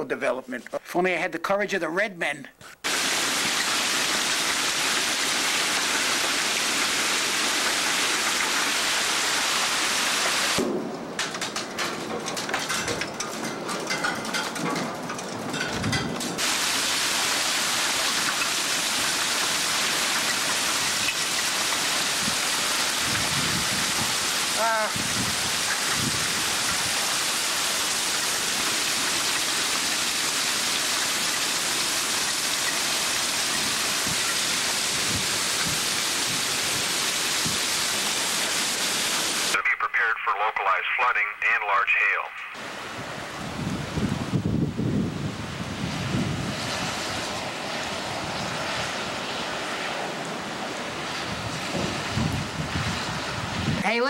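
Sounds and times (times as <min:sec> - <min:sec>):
heavy rain hissing on ground: 0:02.8 - 0:54.0.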